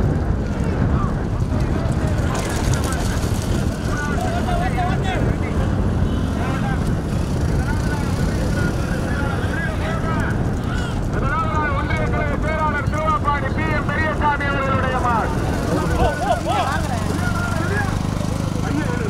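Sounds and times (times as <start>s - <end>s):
wind rumble on microphone: 0.0s - 19.0s
people shouting and calling: 2.0s - 19.0s.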